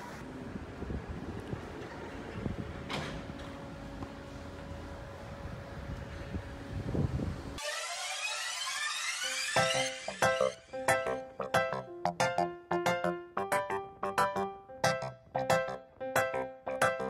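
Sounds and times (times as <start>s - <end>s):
music: 9.2s - 17.0s.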